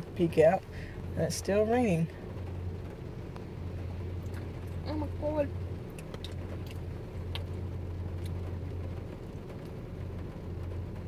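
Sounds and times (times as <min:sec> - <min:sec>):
car engine idling: 0:00.0 - 0:11.0
woman's voice: 0:00.1 - 0:00.6, 0:01.2 - 0:02.1, 0:04.8 - 0:05.5.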